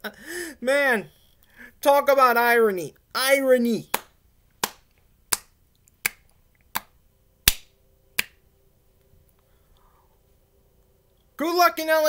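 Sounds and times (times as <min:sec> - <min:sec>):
finger snaps: 0:03.9 - 0:08.4.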